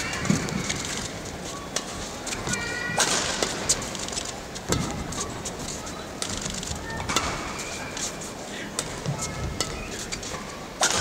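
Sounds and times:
shoes squeaking on court: 0:00.0 - 0:08.4
arena noise: 0:00.0 - 0:11.0
racket hitting shuttlecock: 0:04.7 - 0:05.2, 0:07.0 - 0:08.1, 0:08.8 - 0:11.0.

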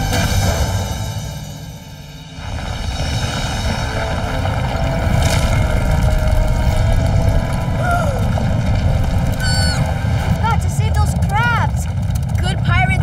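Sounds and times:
loud low rumble: 0:00.0 - 0:13.0
squeaky rising and falling glide: 0:09.3 - 0:10.4.

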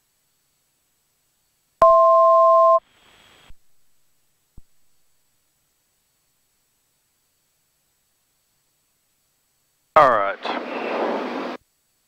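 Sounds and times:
radio hiss: 0:02.8 - 0:03.6, 0:09.9 - 0:11.6
unintelligible radio voice: 0:10.0 - 0:11.0.

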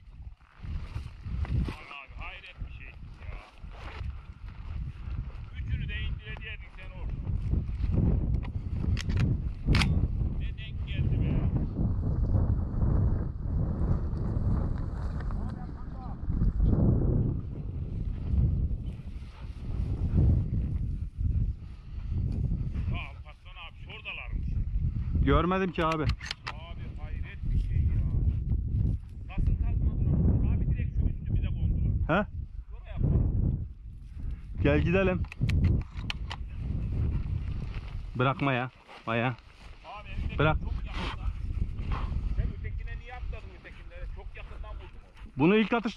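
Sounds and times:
footsteps on dry grass and rocks: 0:00.0 - 0:11.1, 0:13.9 - 0:15.9, 0:17.2 - 0:23.2, 0:26.8 - 0:29.5, 0:35.6 - 0:45.9
wind buffeting microphone: 0:00.0 - 0:45.9.

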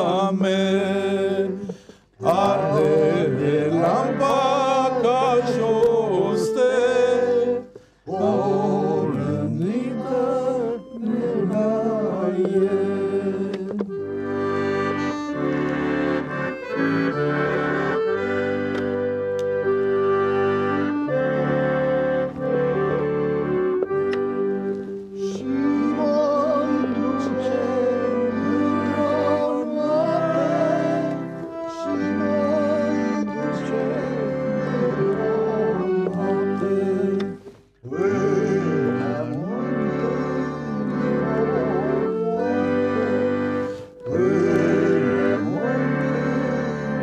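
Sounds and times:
man singing: 0:00.0 - 0:14.0, 0:25.2 - 0:47.0
accordion playing: 0:00.0 - 0:47.0.

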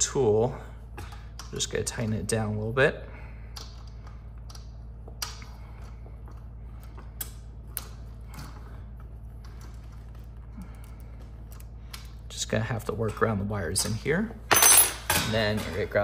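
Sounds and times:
faint low hum: 0:00.0 - 0:16.0.

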